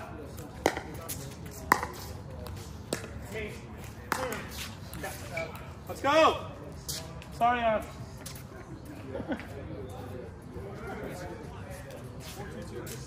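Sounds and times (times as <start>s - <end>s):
paddles hitting plastic ball: 0.4s - 3.2s, 4.0s - 5.0s.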